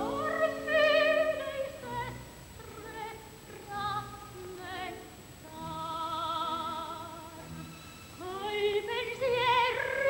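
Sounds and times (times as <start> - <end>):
soft orchestral accompaniment: 5.5 - 10.0.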